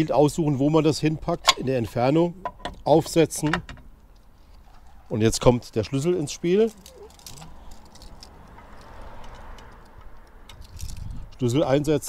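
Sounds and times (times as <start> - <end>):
soft background rush: 0.0 - 12.0.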